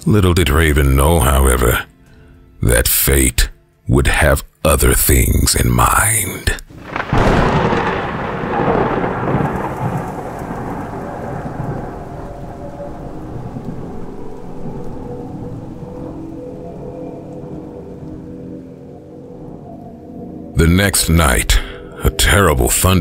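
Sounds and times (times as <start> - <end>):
steady rain: 5.9 - 23.0
thunder rumbling: 6.7 - 23.0.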